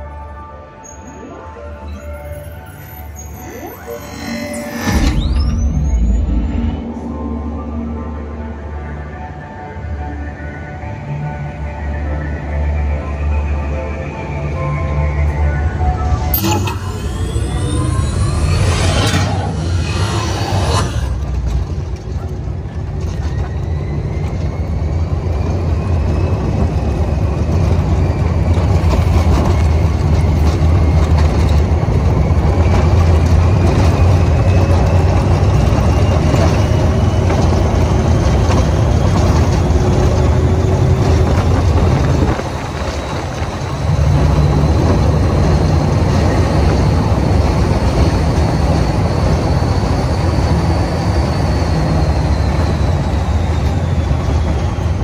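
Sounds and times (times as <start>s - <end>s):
high vehicle whine: 0.0s - 55.0s
wind buffeting microphone: 24.2s - 50.7s.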